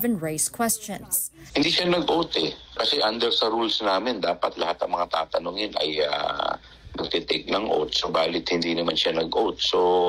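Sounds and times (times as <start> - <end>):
man speaking: 1.4 - 10.0.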